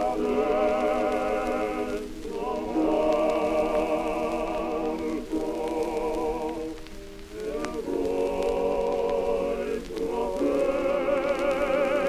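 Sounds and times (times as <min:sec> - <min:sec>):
soprano singing with vibrato: 0:00.0 - 0:12.0.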